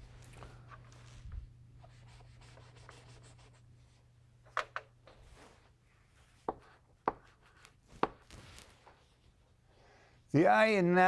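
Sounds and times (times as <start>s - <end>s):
chalk scratching on blackboard: 1.8s - 3.6s
chalk tapping on blackboard: 6.4s - 8.2s.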